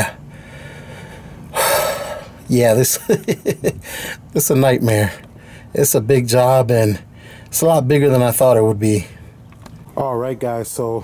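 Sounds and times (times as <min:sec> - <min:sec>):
man sighing heavily: 0:00.0 - 0:02.4.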